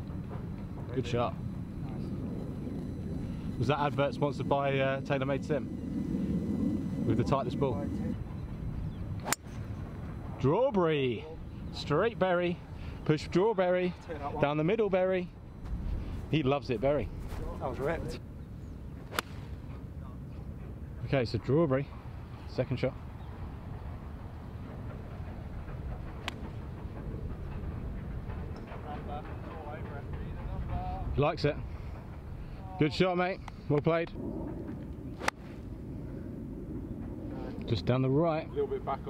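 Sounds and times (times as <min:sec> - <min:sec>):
wind rumble on microphone: 0:00.0 - 0:21.1, 0:23.0 - 0:39.0
golf club striking ball: 0:09.2 - 0:09.6, 0:19.1 - 0:19.5.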